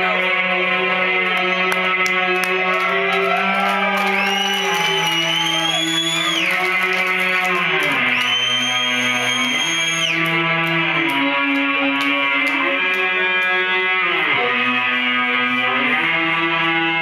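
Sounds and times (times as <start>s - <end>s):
electric guitar chords: 0.0s - 17.0s.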